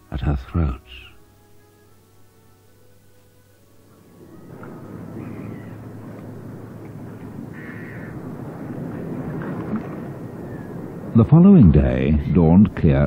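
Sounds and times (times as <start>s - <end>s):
outdoor ambience: 0.0s - 13.0s
bird calling: 3.8s - 12.7s.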